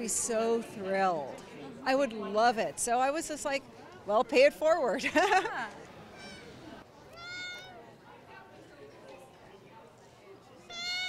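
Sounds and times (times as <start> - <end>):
cat meowing: 7.1 - 7.8, 10.7 - 11.0.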